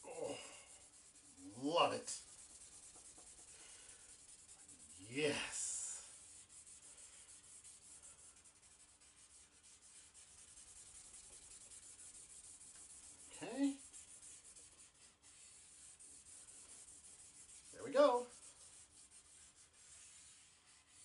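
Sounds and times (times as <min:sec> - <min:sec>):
stump scrubbing on paper: 0:00.7 - 0:21.0.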